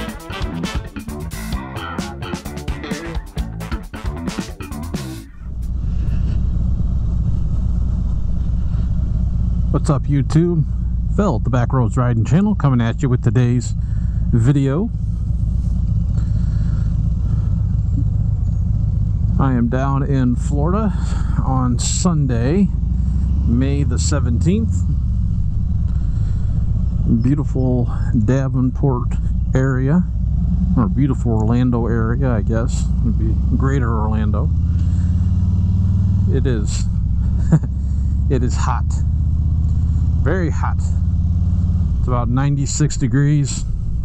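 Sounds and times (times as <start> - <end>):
motorcycle engine running at low speed: 0.0 - 44.0.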